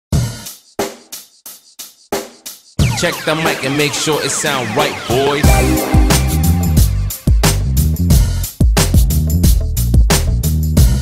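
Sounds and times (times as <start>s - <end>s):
snare drum: 0.2s - 3.8s, 5.4s - 9.2s
bass drum: 5.4s - 11.0s.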